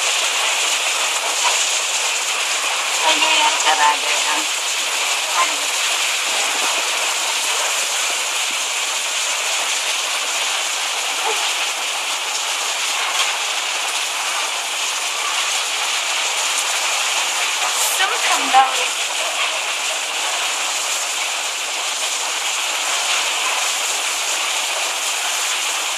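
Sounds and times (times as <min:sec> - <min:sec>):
heavy rain pouring: 0:00.0 - 0:25.9.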